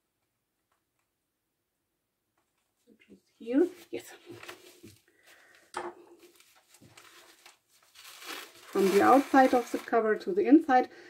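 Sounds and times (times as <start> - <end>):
fabric and paper rustling: 2.4 - 10.6.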